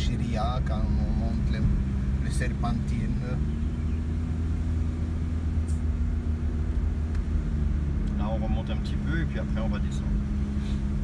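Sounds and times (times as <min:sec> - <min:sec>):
car engine and tyres droning: 0:00.0 - 0:11.0.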